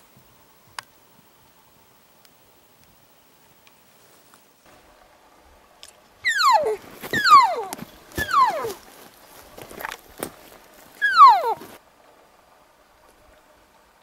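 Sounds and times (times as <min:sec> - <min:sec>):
elk call mews: 0:06.2 - 0:08.8, 0:11.0 - 0:11.7.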